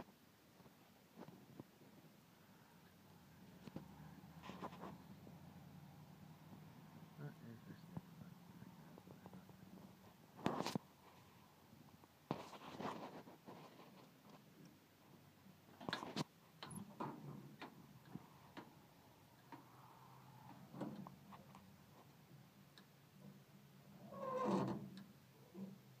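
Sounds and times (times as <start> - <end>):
faint knocks and rustles: 2.8 - 5.5, 7.7 - 23.5.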